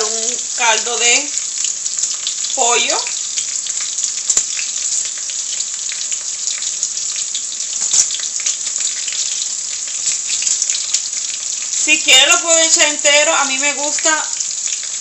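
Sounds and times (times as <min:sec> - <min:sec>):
vegetables sizzling in oil: 0:00.0 - 0:15.0.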